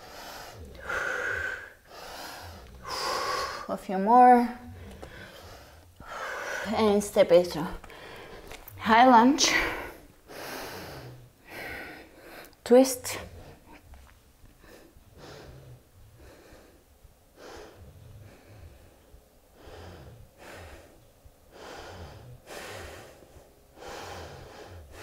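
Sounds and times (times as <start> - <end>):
woman breathing slowly: 0.0 - 7.2, 7.8 - 8.8, 9.4 - 25.0.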